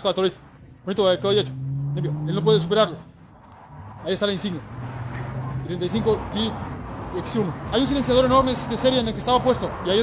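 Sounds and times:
man talking: 0.0 - 3.1, 4.0 - 4.7, 5.6 - 10.0.

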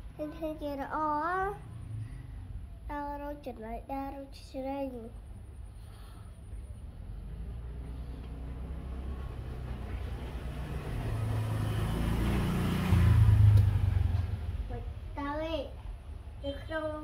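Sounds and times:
vehicle engine passing by: 1.3 - 2.9, 5.4 - 17.0.

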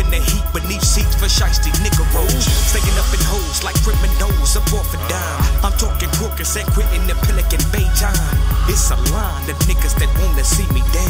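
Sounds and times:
heavy bass line: 0.0 - 11.0
rapping over a beat: 0.0 - 11.0
steady drum beat: 0.0 - 11.0.

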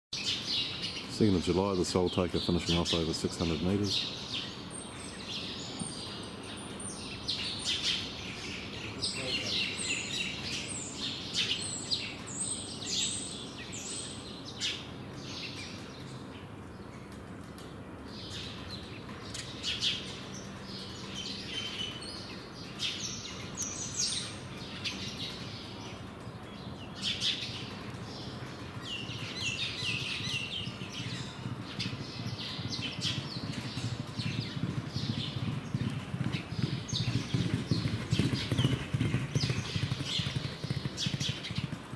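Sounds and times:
birds chirping: 0.1 - 41.9
horse hoofbeats on turf: 28.1 - 41.9.

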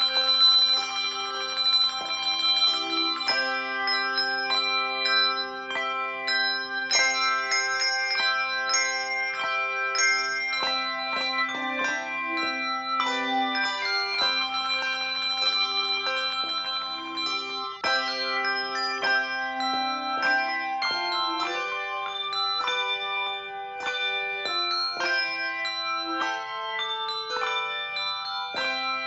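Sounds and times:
handbells ringing in chords: 0.0 - 29.0.

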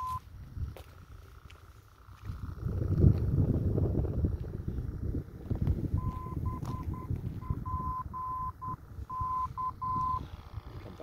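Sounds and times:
morse code tone: 0.0 - 0.2, 6.0 - 10.2.

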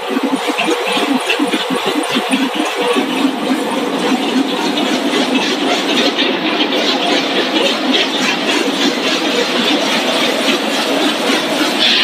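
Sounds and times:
production line machinery clattering: 0.0 - 12.0.

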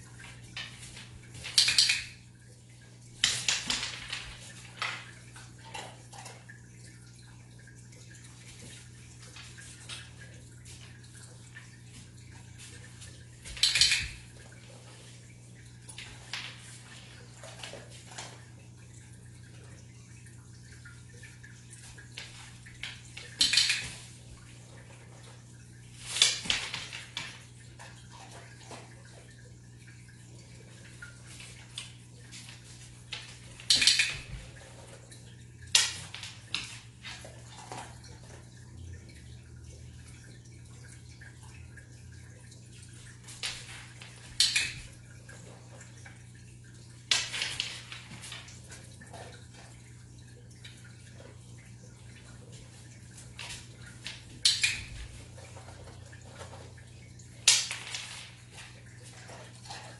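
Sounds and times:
low room hum: 0.0 - 59.9.

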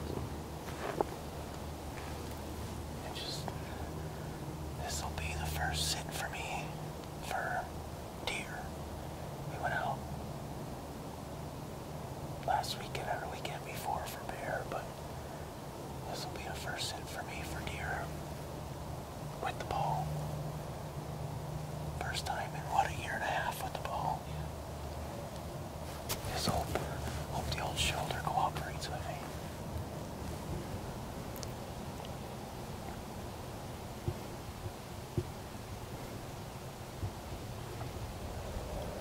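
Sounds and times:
steady low hum: 0.0 - 39.0
hushed whispering: 3.0 - 4.0, 4.7 - 8.8, 9.5 - 10.1, 12.4 - 15.0, 16.0 - 18.4, 19.3 - 20.2, 22.0 - 24.7, 25.9 - 29.6.

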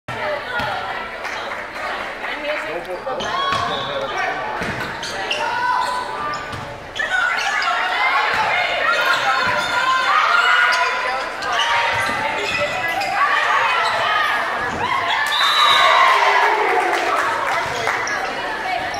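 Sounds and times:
spectators shouting: 13.0 - 18.9.

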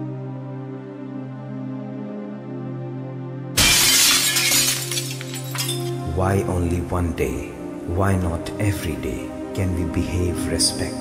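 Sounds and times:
low background music: 0.0 - 11.0
clinks of falling glass: 3.6 - 6.0
glass shattering: 3.6 - 6.0.

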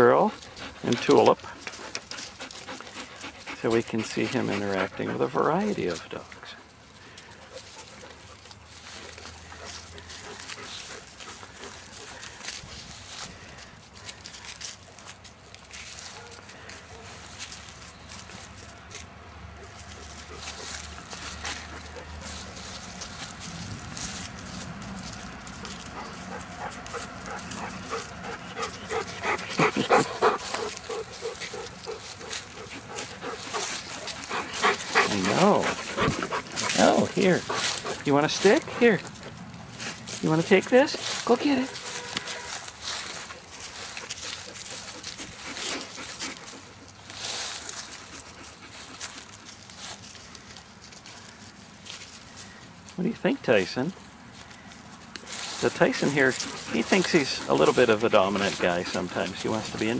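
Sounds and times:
outdoor background noise: 0.0 - 59.9
dogs barking: 16.0 - 17.2, 25.6 - 39.0.

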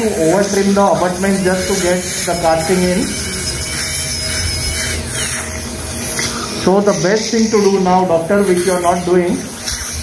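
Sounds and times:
dental drill whining: 0.0 - 10.0.

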